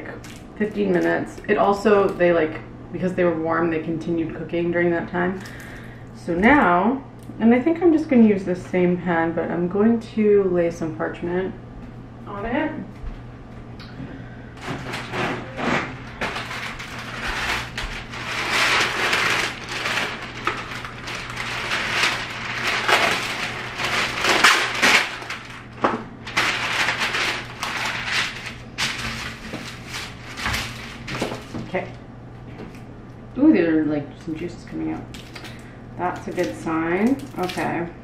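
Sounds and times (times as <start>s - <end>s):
paper crinkling and rustling: 14.6s - 32.8s.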